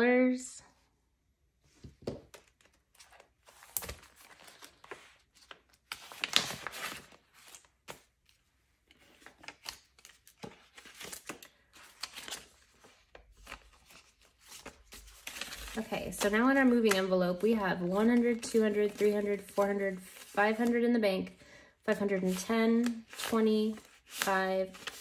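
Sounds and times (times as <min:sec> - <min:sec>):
paper banknotes rustling: 0:02.3 - 0:21.3, 0:21.9 - 0:25.0.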